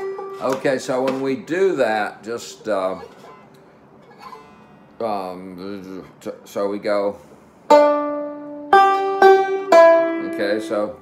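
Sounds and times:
banjo strings ringing faintly: 0:00.0 - 0:11.0.

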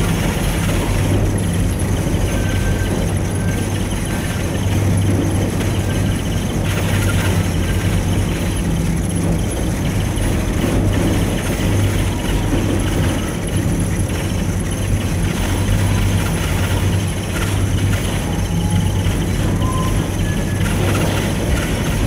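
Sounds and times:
gondola cabin humming and rumbling: 0:00.0 - 0:22.0.

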